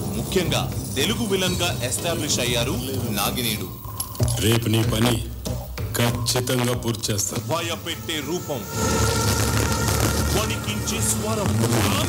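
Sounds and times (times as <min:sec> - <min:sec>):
man speaking: 0:00.0 - 0:08.8, 0:10.2 - 0:12.0
jangling clinking sound: 0:00.6 - 0:05.1.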